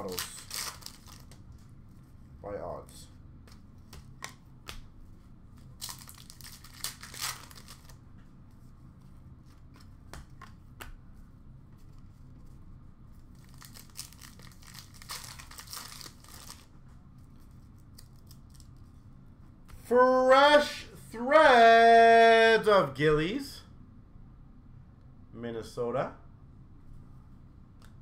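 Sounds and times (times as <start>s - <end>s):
wrapper tearing and crinkling: 0.0s - 1.4s, 5.8s - 8.0s, 13.4s - 16.7s.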